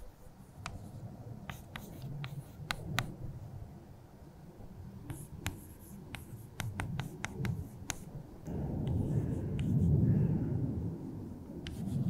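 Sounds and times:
chalk tapping on chalkboard: 0.0 - 0.9, 1.5 - 3.1, 5.1 - 8.1, 8.9 - 9.9, 11.7 - 12.0
chalk scratching: 0.0 - 3.1, 5.1 - 8.1, 8.9 - 10.0, 11.7 - 12.0.

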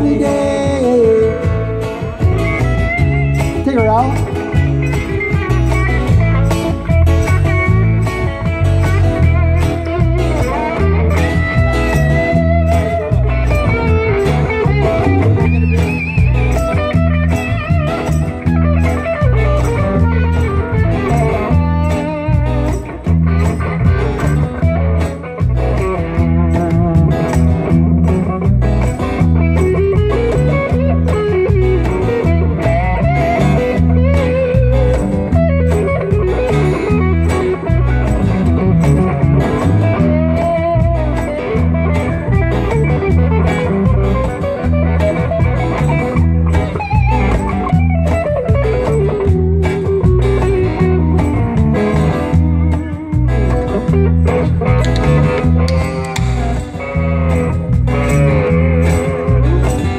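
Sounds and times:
acoustic guitar: 0.0 - 59.9
cajon beat: 0.0 - 59.9
lead electric guitar melody: 0.0 - 59.9.

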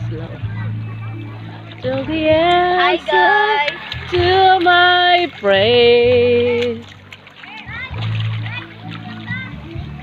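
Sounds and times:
music with low bass line: 0.0 - 10.0
water splashing: 0.0 - 10.0
children's voices: 0.4 - 4.4, 7.4 - 10.0.

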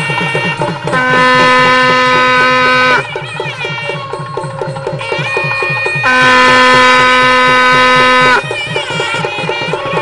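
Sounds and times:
wind instrument held note: 0.0 - 4.0, 6.0 - 10.0
fast drumming: 0.0 - 10.0.

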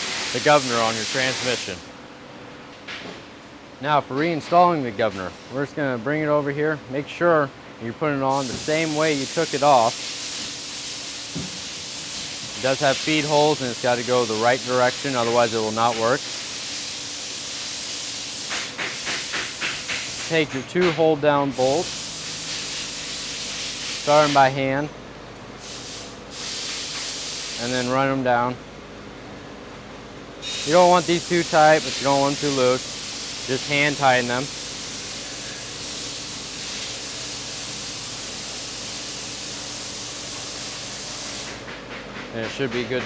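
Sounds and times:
steady hiss: 0.0 - 1.9, 8.2 - 24.6, 25.6 - 28.0, 30.4 - 41.6
background hiss: 8.3 - 20.5, 21.4 - 24.6.

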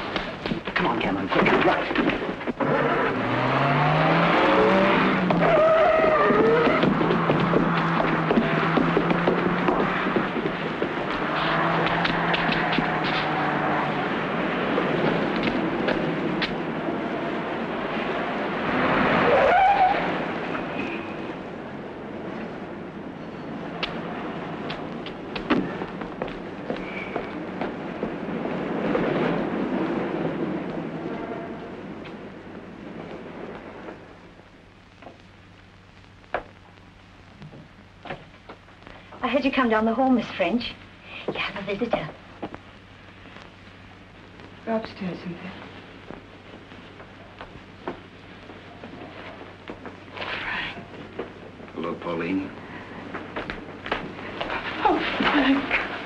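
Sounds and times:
car engines revving: 1.5 - 20.8
tyre squeal: 5.3 - 7.2, 19.2 - 21.2, 26.8 - 27.3.

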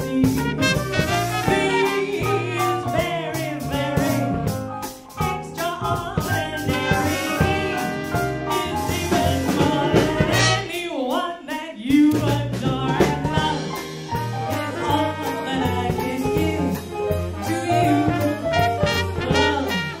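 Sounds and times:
woman singing: 0.0 - 0.7, 1.4 - 4.4, 5.2 - 13.7, 14.6 - 18.4, 19.0 - 20.0
upright bass: 0.0 - 11.0, 11.8 - 20.0
drums: 0.0 - 20.0
piano: 0.0 - 20.0
trumpet and horns: 0.3 - 2.6, 6.7 - 11.0, 17.4 - 20.0.

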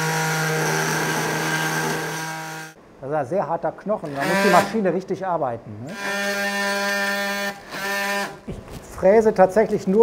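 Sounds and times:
bone saw whining: 0.0 - 2.8.

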